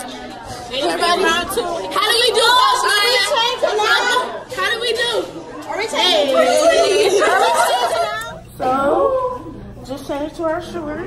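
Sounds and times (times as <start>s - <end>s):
girls chattering loudly: 0.0s - 10.8s.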